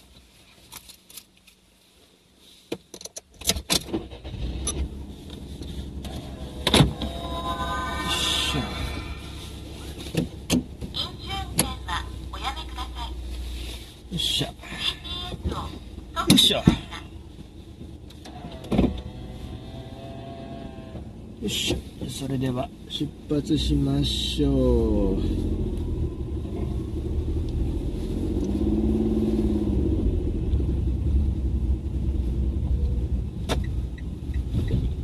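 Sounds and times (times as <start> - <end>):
ignition clicks: 3.0 - 7.2, 10.0 - 11.9, 32.8 - 35.0
car engine idling: 4.1 - 35.0
power window motor whine: 18.2 - 21.1.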